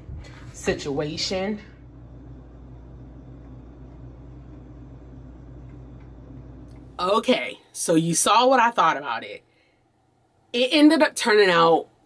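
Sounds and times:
low mechanical hum: 0.0 - 7.7.

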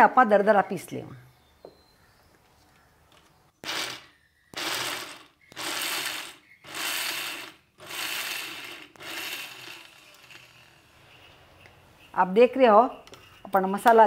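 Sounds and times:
electric mixer grinder pulsing: 3.6 - 10.8.

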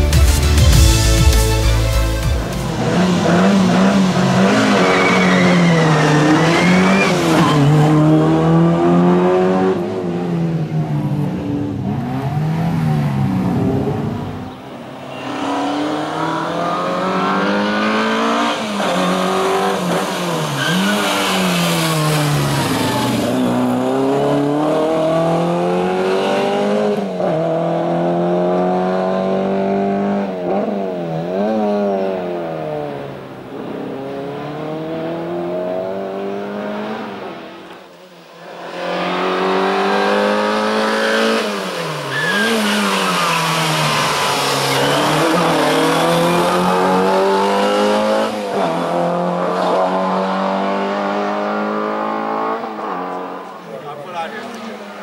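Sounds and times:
rally car engine revving: 2.4 - 37.8, 38.6 - 55.0.

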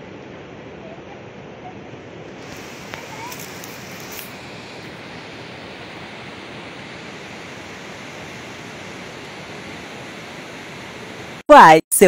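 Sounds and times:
river water rushing: 2.1 - 11.4.

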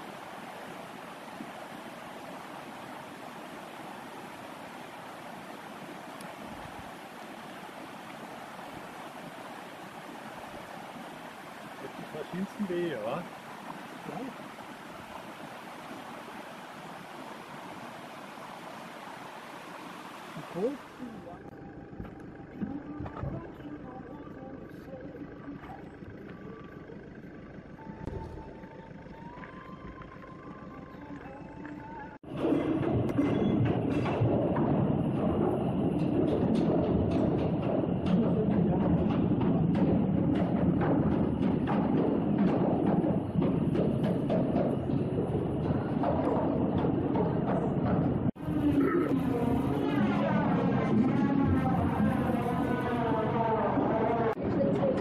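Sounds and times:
outdoor background sound: 0.0 - 55.0.

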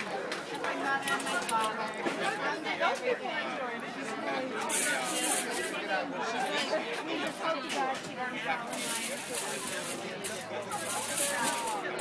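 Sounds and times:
background chatter of voices: 0.0 - 12.0
aluminium foil crinkling: 8.7 - 12.0.

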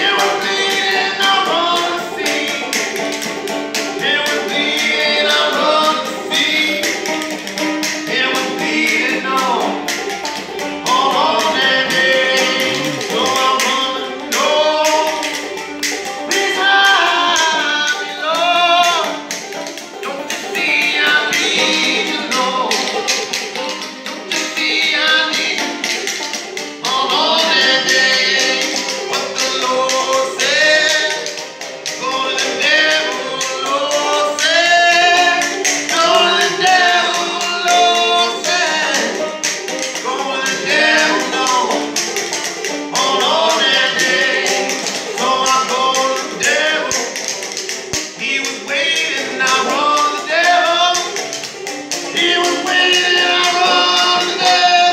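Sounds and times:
hand-slapped body percussion: 0.0 - 17.6, 18.8 - 48.4
person singing: 0.0 - 19.3, 20.0 - 54.9
banjo picking: 0.0 - 54.9.

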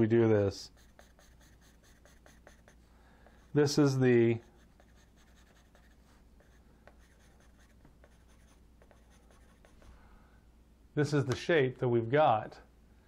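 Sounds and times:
pencil scratching on paper: 0.7 - 9.9
pencil point ticks: 0.8 - 2.8.

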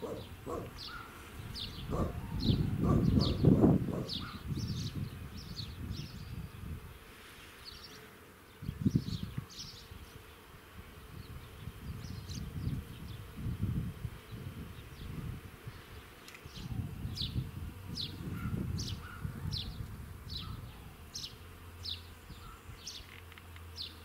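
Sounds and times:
bees buzzing: 0.0 - 24.0.

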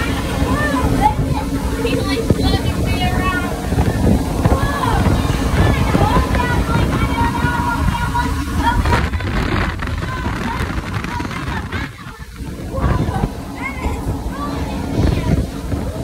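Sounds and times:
wind blasting over microphone: 0.0 - 16.0.

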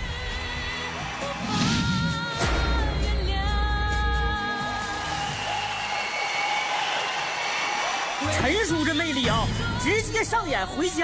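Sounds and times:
studio audience applauding: 0.4 - 1.6, 4.5 - 9.2.

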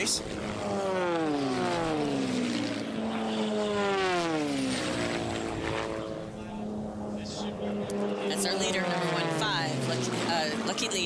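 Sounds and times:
propeller planes passing: 0.0 - 11.0.

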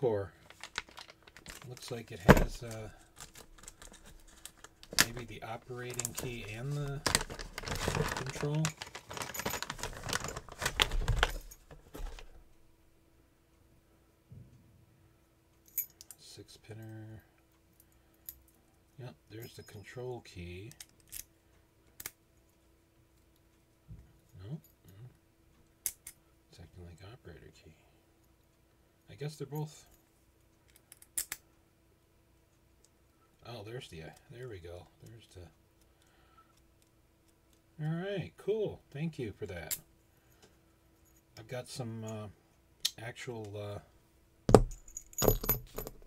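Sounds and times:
keys clinking: 5.8 - 12.2, 44.5 - 46.0
metal lock and keys clicking: 44.6 - 46.0.

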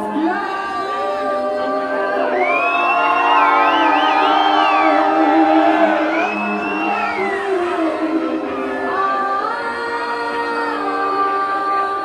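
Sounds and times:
crowd noise: 0.0 - 12.0
women singing a cappella: 0.0 - 12.0.

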